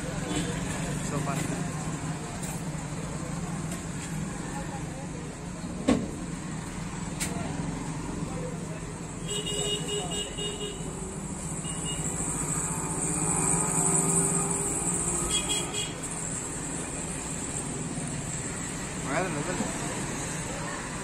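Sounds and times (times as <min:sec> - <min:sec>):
passing traffic: 0:00.0 - 0:21.0
high car horn: 0:09.2 - 0:11.0, 0:11.6 - 0:12.1, 0:15.2 - 0:16.0
vehicle engine hum: 0:10.4 - 0:21.0.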